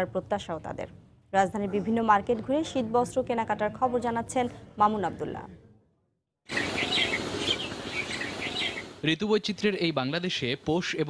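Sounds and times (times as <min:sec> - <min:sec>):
birds chirping: 0:06.5 - 0:09.0.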